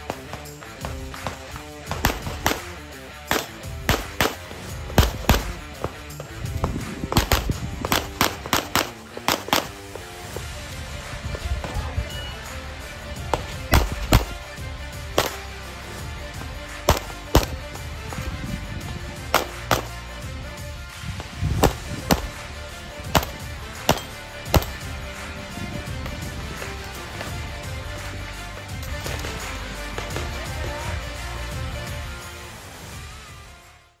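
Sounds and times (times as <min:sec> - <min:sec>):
background music: 0:00.0 - 0:34.0
pistol shots: 0:01.2 - 0:06.2, 0:07.1 - 0:10.0, 0:13.3 - 0:14.5, 0:15.1 - 0:15.5, 0:16.7 - 0:17.8, 0:19.2 - 0:20.0, 0:21.6 - 0:22.4, 0:23.0 - 0:24.9.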